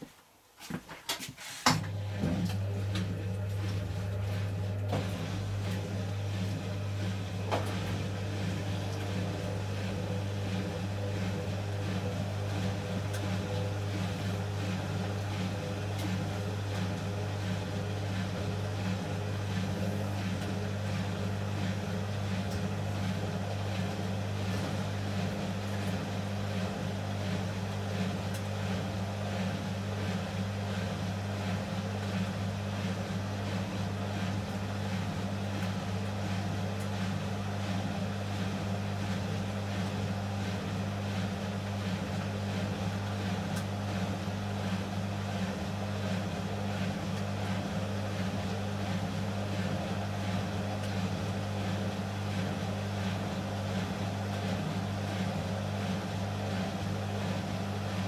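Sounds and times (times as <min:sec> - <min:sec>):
washing machines spinning: 0:00.0 - 0:58.0.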